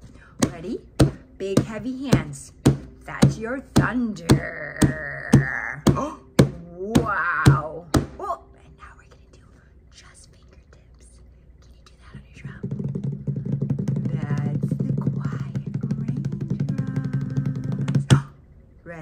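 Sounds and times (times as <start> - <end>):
hands drumming rapid roll: 0.4 - 8.3, 12.2 - 18.4
hard drum strike: 0.4 - 8.3, 12.3 - 18.4.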